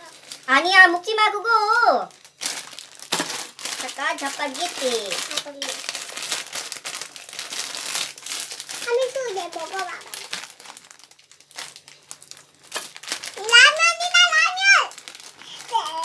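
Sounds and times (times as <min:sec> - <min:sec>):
plastic packet crinkling: 0:00.0 - 0:16.0
person speaking: 0:13.4 - 0:14.9, 0:15.5 - 0:16.0.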